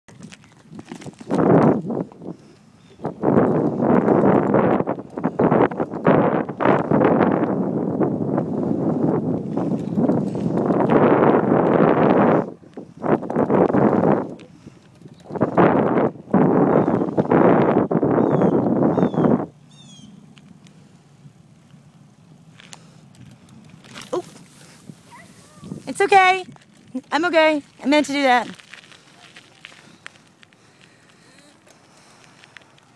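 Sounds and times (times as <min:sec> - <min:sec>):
wind noise on microphone: 0:00.1 - 0:21.7, 0:22.5 - 0:32.9.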